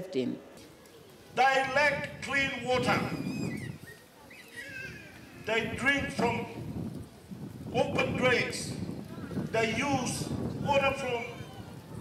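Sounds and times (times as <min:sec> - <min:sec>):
man speaking over loudspeaker: 0:01.4 - 0:03.2, 0:05.5 - 0:06.6, 0:07.7 - 0:08.8, 0:09.5 - 0:11.5
high wavering animal calls: 0:03.0 - 0:05.4, 0:11.3 - 0:11.8.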